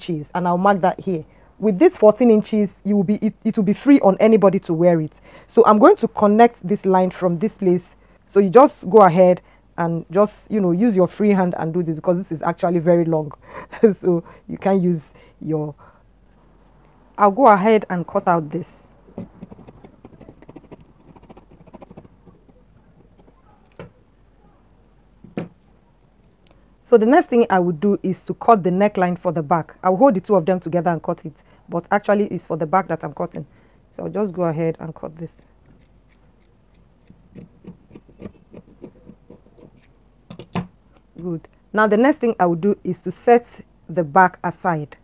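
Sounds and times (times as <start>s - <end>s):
scissors cutting fabric: 19.3s - 23.2s, 35.6s - 40.0s.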